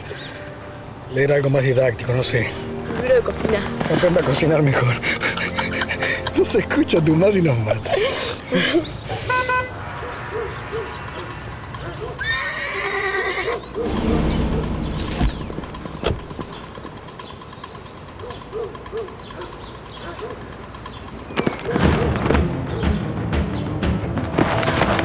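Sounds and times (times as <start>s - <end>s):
horse neighing: 12.2s - 13.7s.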